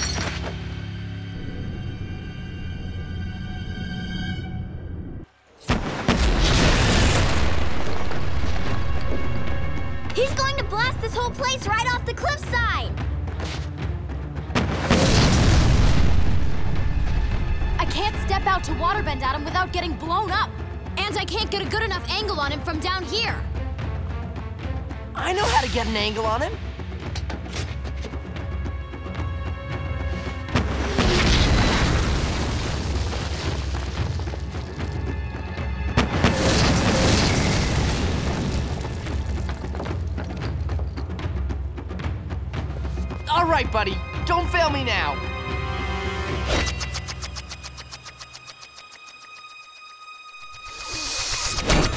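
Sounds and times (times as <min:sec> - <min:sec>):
background music: 0:00.0 - 0:51.9
explosion crack and boom: 0:05.6 - 0:09.9, 0:14.5 - 0:17.5, 0:30.5 - 0:34.9, 0:36.0 - 0:40.2
explosion booms: 0:05.7 - 0:09.0, 0:14.6 - 0:17.1.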